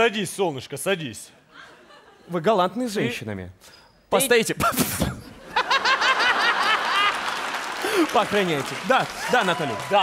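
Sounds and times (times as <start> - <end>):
hearty laughter: 5.4 - 7.2.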